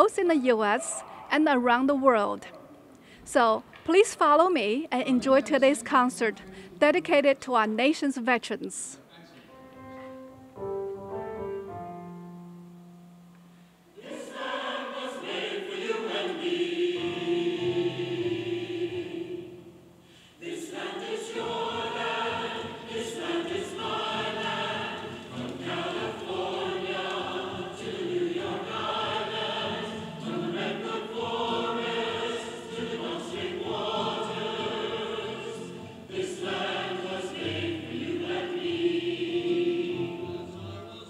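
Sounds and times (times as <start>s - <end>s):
choir singing with orchestra: 13.9s - 41.0s.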